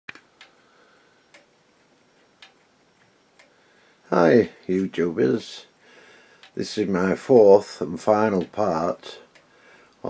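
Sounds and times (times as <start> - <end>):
clock ticking: 0.1 - 0.6, 1.2 - 5.7, 6.4 - 9.5.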